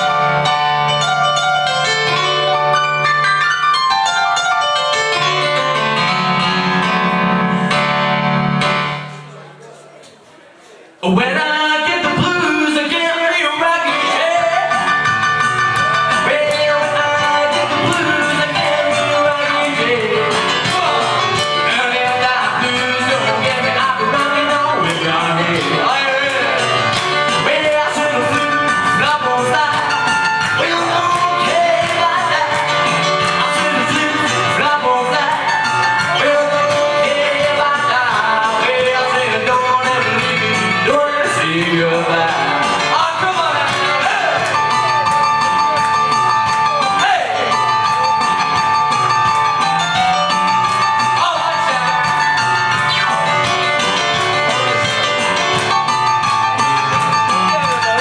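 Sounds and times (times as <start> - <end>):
rock and roll piano intro: 0.0 - 9.3, 11.8 - 58.0
drum machine beat: 14.3 - 58.0.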